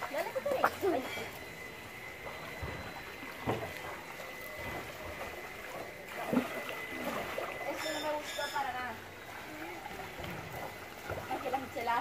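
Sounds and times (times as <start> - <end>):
pool water lapping and trickling: 0.0 - 12.0
water splash: 2.2 - 11.9.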